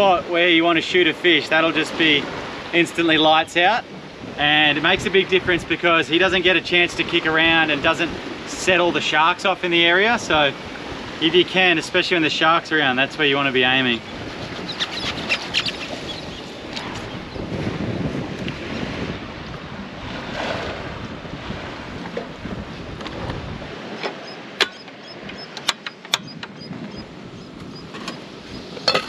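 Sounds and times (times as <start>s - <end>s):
moving sea water: 0.0s - 29.0s
wind on microphone: 2.0s - 12.1s, 13.2s - 29.0s.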